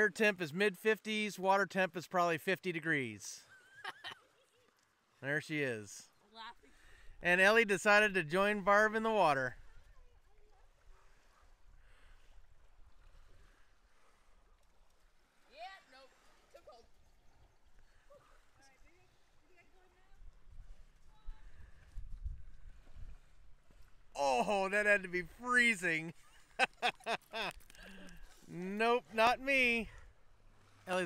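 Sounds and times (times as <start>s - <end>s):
wind rumble on microphone: 20.0s - 23.9s.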